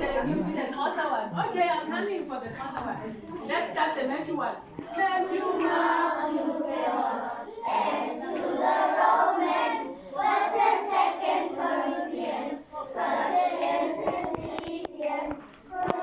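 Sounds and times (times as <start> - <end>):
children singing in unison: 5.2 - 16.0.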